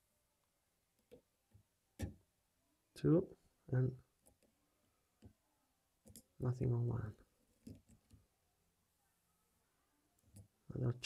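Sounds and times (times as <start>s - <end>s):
man speaking: 3.0s - 4.0s, 6.4s - 7.2s, 10.7s - 11.0s.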